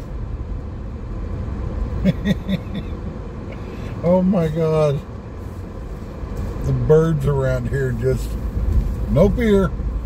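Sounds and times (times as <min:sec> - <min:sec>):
car idling inside cabin: 0:00.0 - 0:10.0
person chuckling: 0:02.0 - 0:03.0.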